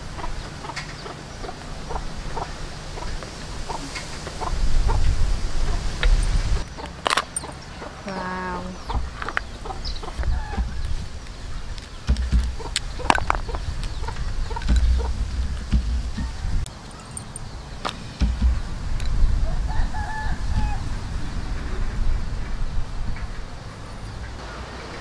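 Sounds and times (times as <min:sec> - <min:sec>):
chickens clucking: 0:00.0 - 0:25.0
wind rumbling on microphone: 0:00.0 - 0:25.0
crab shells clicking: 0:11.2 - 0:16.1.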